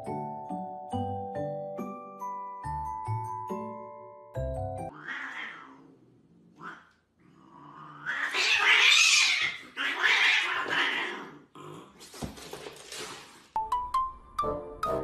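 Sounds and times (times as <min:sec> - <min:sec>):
cats hissing and yowling: 0:04.9 - 0:11.5.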